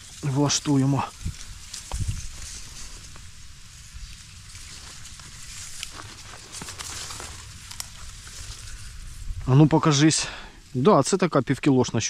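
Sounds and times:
dry reeds rustling: 0.0s - 12.0s.

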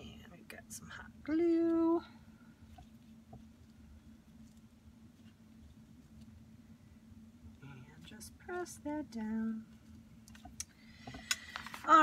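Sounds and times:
woman's voice: 0.0s - 2.2s, 7.6s - 9.6s, 11.8s - 12.0s.

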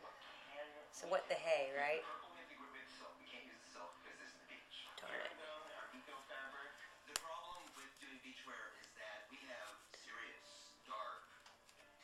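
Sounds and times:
faint television talk: 0.0s - 12.0s.

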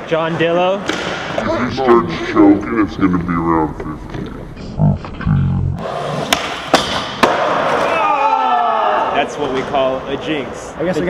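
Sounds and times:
person's voice: 1.4s - 5.8s
skateboard scraping and rolling: 5.8s - 7.9s
skateboard hitting concrete: 6.2s - 7.8s.

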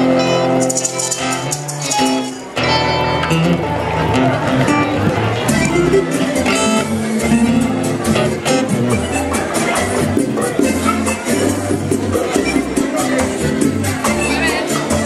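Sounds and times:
strummed and plucked guitars: 0.0s - 15.0s.

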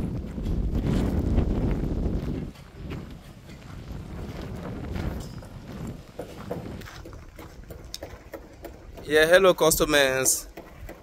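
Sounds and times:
footsteps on gravelly ground: 0.0s - 10.9s.

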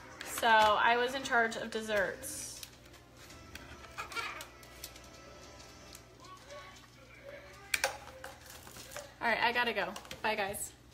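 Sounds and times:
faint music: 0.0s - 10.9s.

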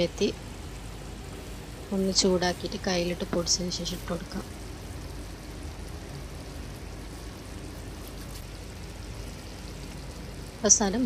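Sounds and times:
gravy simmering in a pan: 0.2s - 11.0s.

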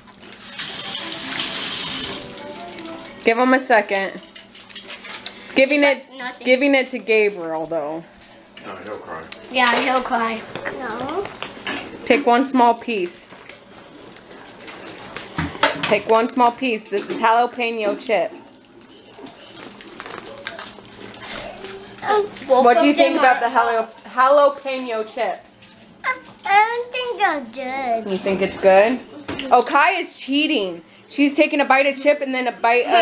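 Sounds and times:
faint household clatter: 0.0s - 27.2s, 28.0s - 33.0s
crackling rustle: 13.2s - 15.4s, 18.4s - 22.6s.

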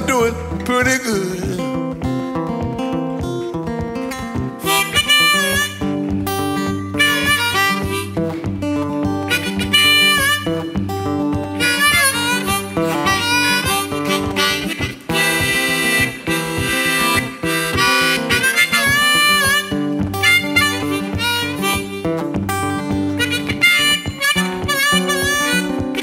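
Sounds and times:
strummed acoustic guitar: 0.0s - 26.0s
blues harmonica wailing: 4.6s - 26.0s.

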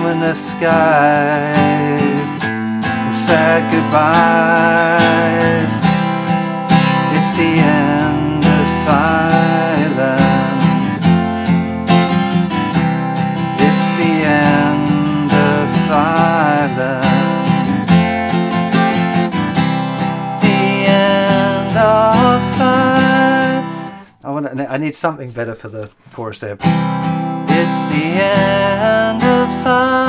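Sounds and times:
man singing: 0.0s - 11.7s, 13.5s - 18.1s, 20.4s - 24.4s, 27.5s - 30.0s
acoustic guitar strumming: 0.0s - 24.5s, 26.6s - 30.0s.

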